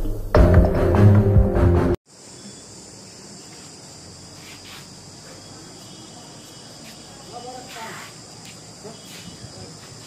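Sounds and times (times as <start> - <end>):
high-pitched insect chorus: 2.1 - 10.0.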